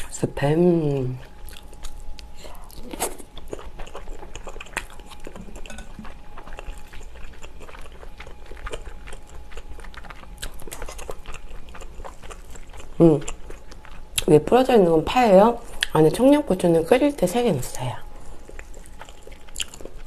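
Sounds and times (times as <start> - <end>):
chewing and mouth sounds: 1.2 - 14.3, 15.6 - 16.0, 17.7 - 20.0.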